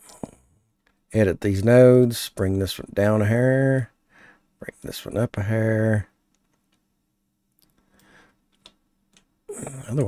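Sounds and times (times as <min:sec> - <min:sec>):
man talking: 0:01.1 - 0:04.0, 0:04.6 - 0:06.2, 0:09.5 - 0:10.0.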